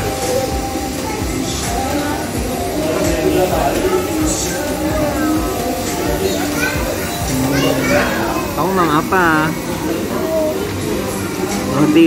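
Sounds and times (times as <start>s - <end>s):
background music: 0.0s - 12.0s
murmur of voices: 0.0s - 12.0s.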